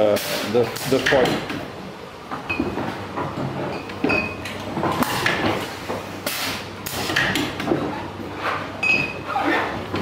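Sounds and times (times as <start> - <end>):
glass bottles clinking together: 3.7 - 4.5.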